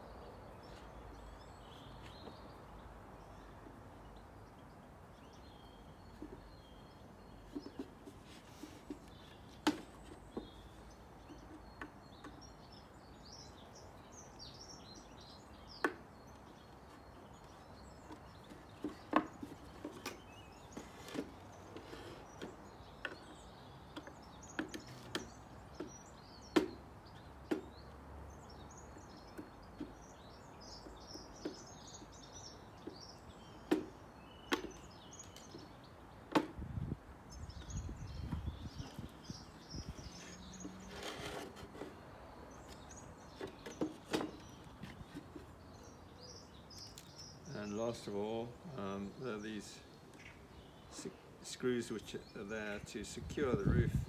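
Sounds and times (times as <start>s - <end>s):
small birds twittering: 0.0s - 54.0s
knocks and clicks of screwdriver and wood: 33.7s - 34.8s.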